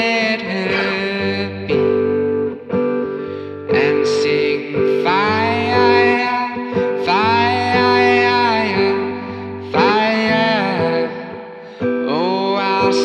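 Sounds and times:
man singing: 0:00.0 - 0:02.2, 0:03.7 - 0:13.0
strummed acoustic guitar: 0:00.0 - 0:13.0.

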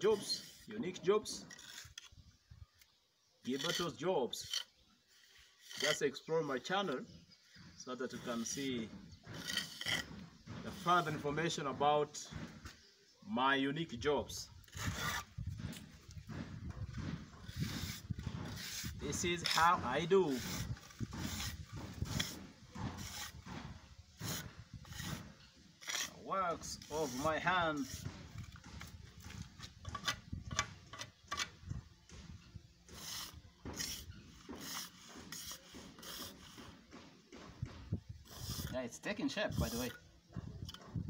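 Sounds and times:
trowel scraping mortar: 0:00.0 - 0:12.9, 0:14.3 - 0:31.6, 0:32.8 - 0:37.3, 0:37.9 - 0:41.0.

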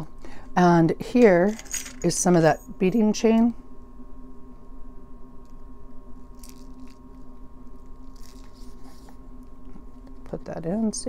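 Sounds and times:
low electrical hum: 0:00.0 - 0:11.0
faint handling noises: 0:01.2 - 0:02.5.

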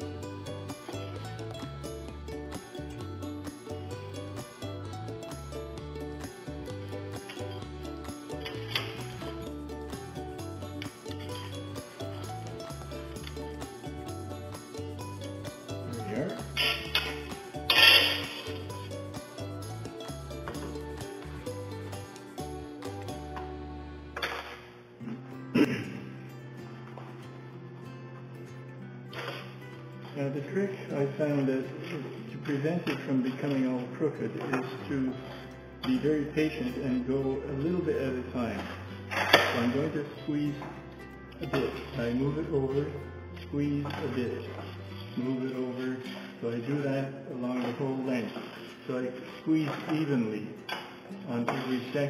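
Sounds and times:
background music with bass line: 0:00.0 - 0:30.0.

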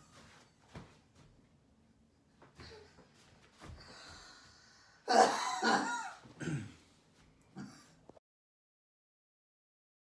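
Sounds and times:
man coughing: 0:05.0 - 0:06.9.

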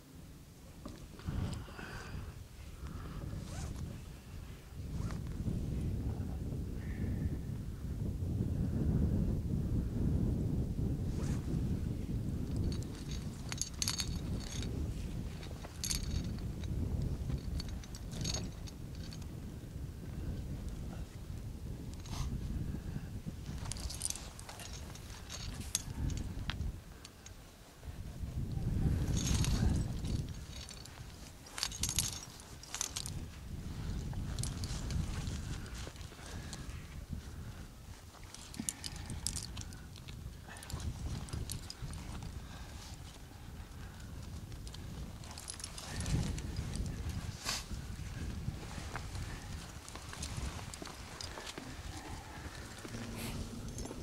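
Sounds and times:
wind buffeting microphone: 0:00.0 - 0:54.0
metal climbing gear clinking: 0:03.5 - 0:03.7, 0:12.4 - 0:19.5, 0:20.6 - 0:22.6, 0:23.4 - 0:54.0.

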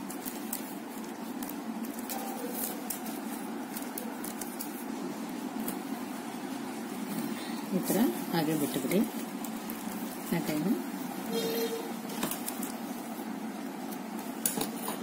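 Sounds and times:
plastic wire strands ticking and rubbing: 0:00.0 - 0:06.6
low background hum: 0:00.0 - 0:15.0.

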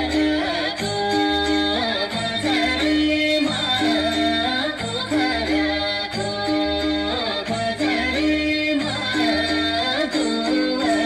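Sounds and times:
folk song singing: 0:00.0 - 0:11.0.

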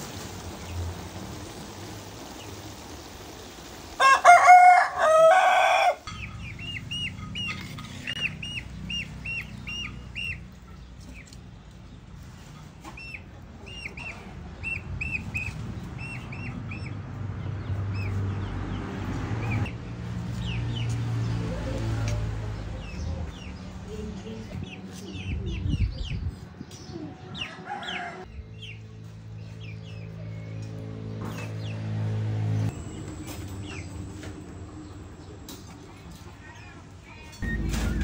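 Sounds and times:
rooster crowing: 0:04.0 - 0:06.1, 0:27.4 - 0:28.3
bird chirping: 0:06.1 - 0:12.0.

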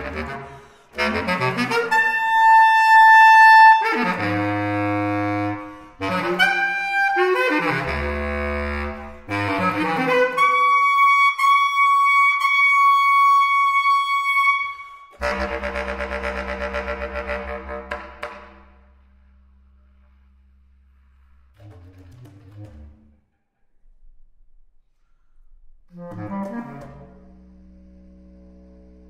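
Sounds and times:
solo bass clarinet playing: 0:00.0 - 0:23.1, 0:25.9 - 0:29.0.

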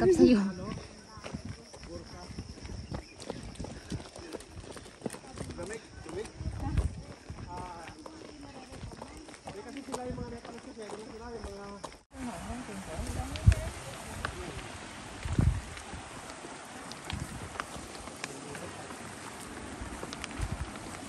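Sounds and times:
footsteps on concrete: 0:00.0 - 0:12.1, 0:13.0 - 0:21.0.

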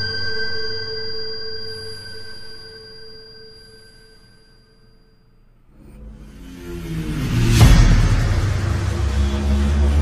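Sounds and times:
sustained ringing tone: 0:00.0 - 0:10.0.

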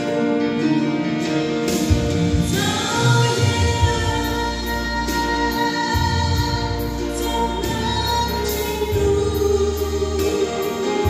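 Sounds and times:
sustained musical accompaniment: 0:00.0 - 0:11.0
woman singing gospel song: 0:02.4 - 0:11.0.

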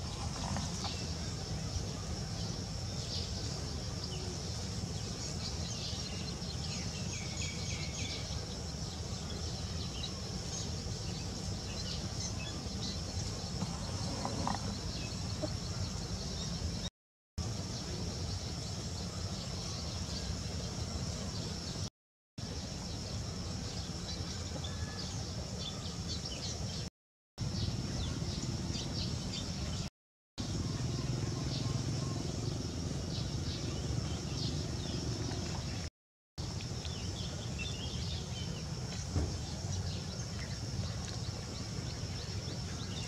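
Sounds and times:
high insect drone: 0:00.0 - 0:16.8.

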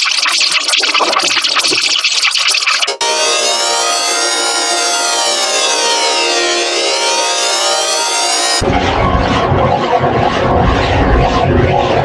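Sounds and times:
electronic chord with flanging sweep: 0:02.9 - 0:12.0.

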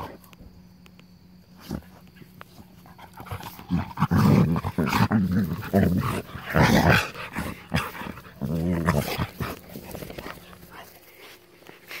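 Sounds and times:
dogs making soft play noises: 0:01.5 - 0:12.0.

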